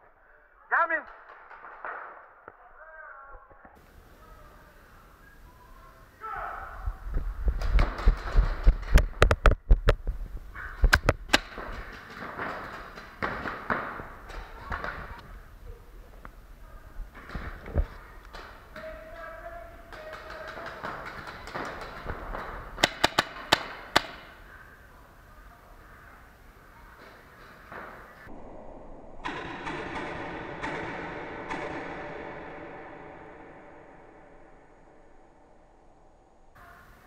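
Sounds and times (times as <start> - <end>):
paintball markers firing: 10.8 - 15.2, 17.2 - 24.4, 29.2 - 32.6.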